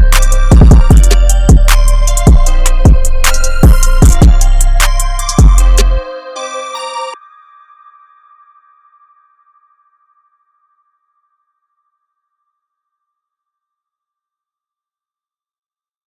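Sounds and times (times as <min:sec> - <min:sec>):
car audio music: 0:00.0 - 0:07.2
high held note: 0:00.0 - 0:07.2.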